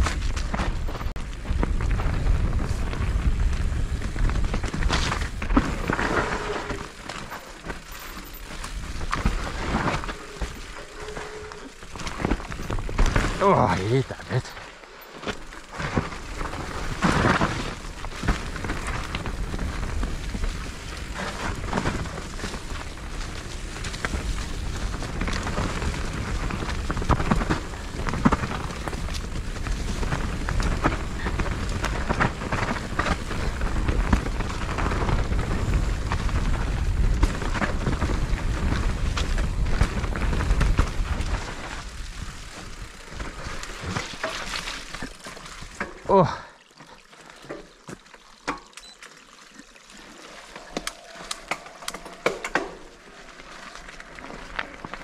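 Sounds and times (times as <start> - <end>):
bike knocks and rattles: 0.0 - 10.8, 11.7 - 13.6
mountain bike riding on dirt trail: 0.0 - 55.0.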